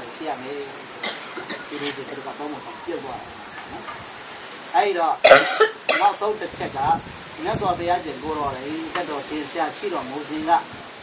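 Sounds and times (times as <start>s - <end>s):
voices talking: 0.0s - 6.8s
person coughing: 5.2s - 6.2s
throat-clear: 5.2s - 6.2s.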